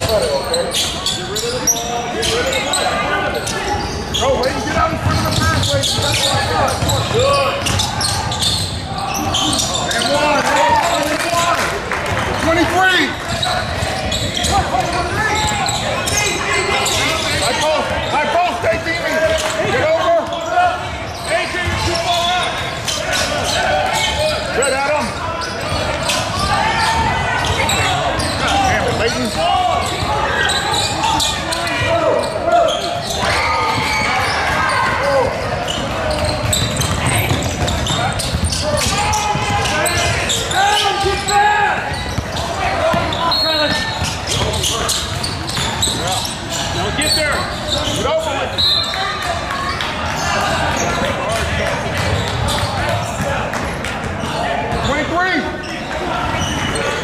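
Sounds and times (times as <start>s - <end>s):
voices calling out: 0.0s - 57.0s
basketball bouncing on wooden floor: 4.9s - 7.9s, 36.1s - 40.2s.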